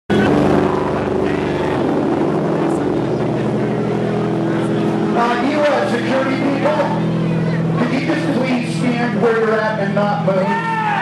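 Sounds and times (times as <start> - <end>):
man's voice: 0.1 - 4.0, 4.6 - 11.0
droning electric guitar chord: 0.1 - 11.0.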